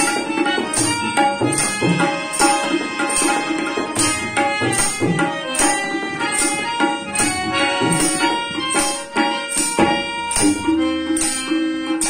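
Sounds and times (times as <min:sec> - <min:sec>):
harmonium melody: 0:00.0 - 0:12.0
tabla strokes: 0:00.0 - 0:12.0.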